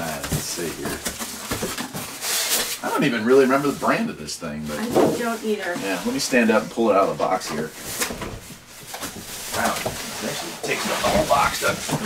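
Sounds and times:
cardboard and plastic rustling: 0.0 - 12.0.

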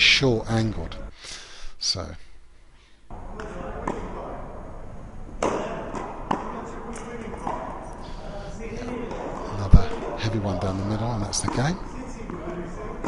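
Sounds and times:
hall hum and echo: 0.0 - 13.0.

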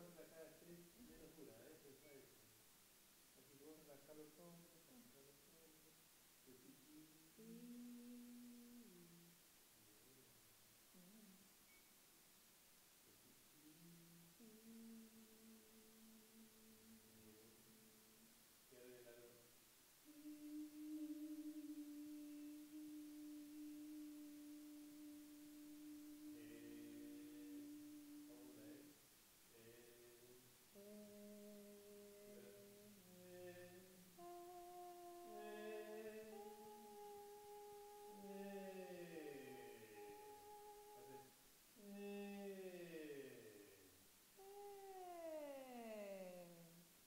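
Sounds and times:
person holding steady vocal note: 0.0 - 2.4, 3.4 - 11.5, 13.1 - 47.0.

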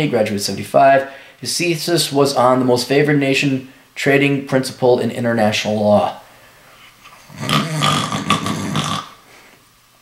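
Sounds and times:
man's rough throat noise: 7.1 - 9.2.

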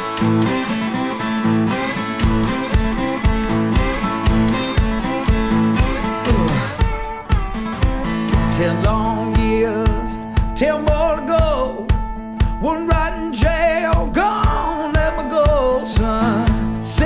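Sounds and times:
slide guitar: 0.0 - 17.0
steady low beat: 1.4 - 17.0.

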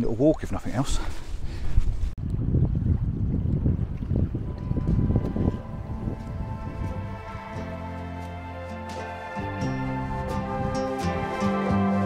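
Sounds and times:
wind noise on microphone: 1.1 - 8.6, 9.4 - 12.0
soft background music: 4.4 - 12.0.

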